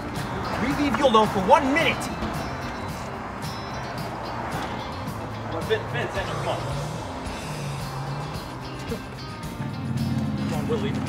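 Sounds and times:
background music: 0.0s - 11.0s
steady outdoor hum: 0.0s - 11.0s.

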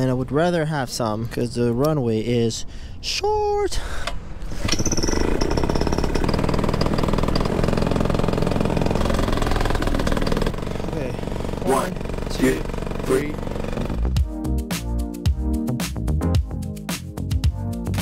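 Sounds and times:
two-stroke engine running: 4.7s - 14.3s
electronic music: 14.0s - 18.0s.

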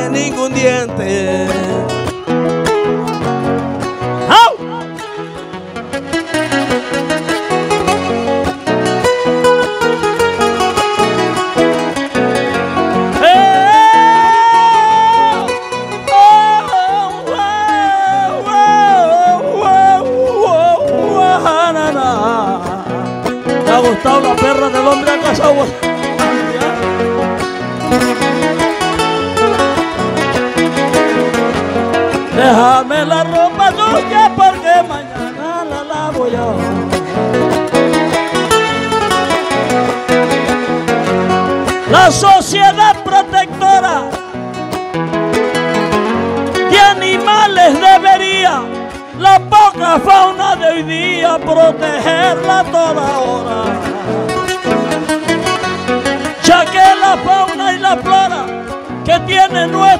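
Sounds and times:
guitar accompaniment: 0.0s - 59.9s.

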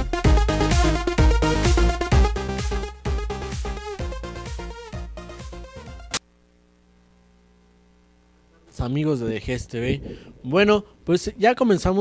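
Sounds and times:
faint electrical hum: 6.2s - 12.0s
man speaking: 8.7s - 12.0s.

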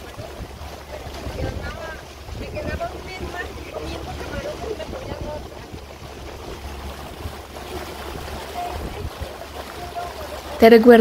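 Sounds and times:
faint voices: 0.0s - 11.0s
water noise: 0.0s - 11.0s
wind rumbling on microphone: 0.0s - 11.0s.

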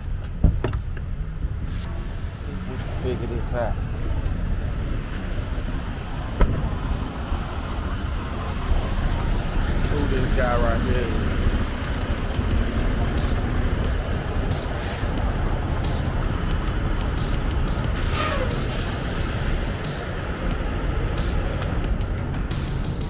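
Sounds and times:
diesel trucks idling: 0.0s - 23.0s.

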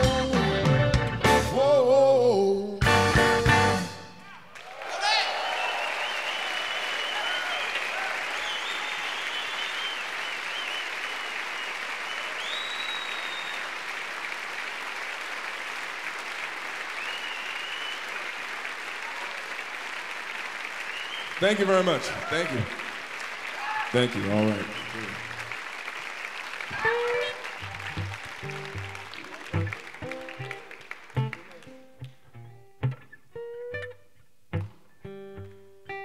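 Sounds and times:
audience applauding: 4.4s - 32.2s
whoops and whistles: 5.0s - 13.7s, 17.0s - 18.2s, 20.9s - 21.4s.

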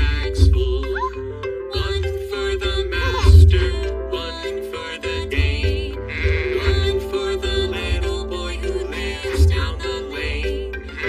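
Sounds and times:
upbeat children's song music: 0.0s - 11.0s
cartoon sheep bleating: 6.1s - 6.9s.

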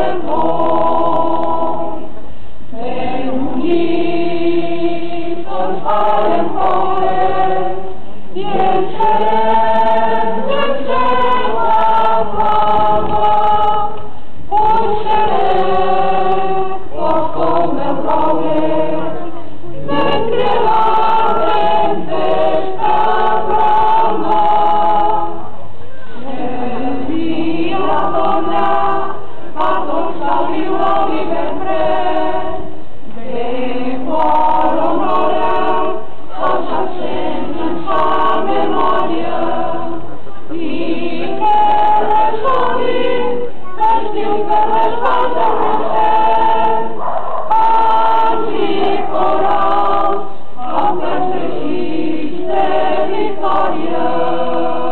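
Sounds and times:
choir singing: 0.0s - 54.9s.

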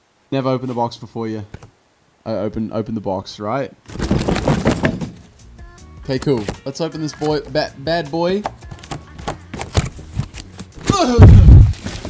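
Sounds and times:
cardboard tearing and rustling: 3.9s - 5.2s, 9.5s - 12.0s
heavy cardboard thud: 3.9s - 5.3s, 10.8s - 12.0s.

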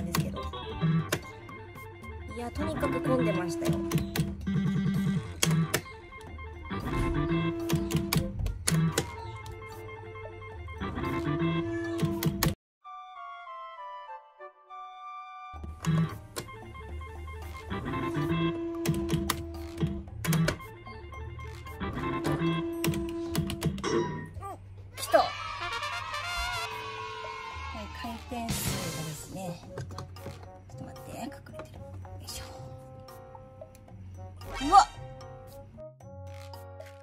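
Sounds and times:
organ-like electronic music: 0.0s - 24.4s
slot machine button clicks: 3.5s - 9.6s.

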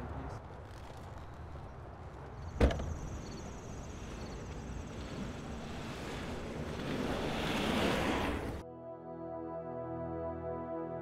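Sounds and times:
rushing outdoor noise: 0.0s - 8.6s.

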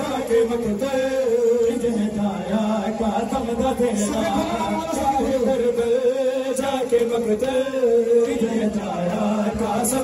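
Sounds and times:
men chanting together: 0.9s - 10.0s.

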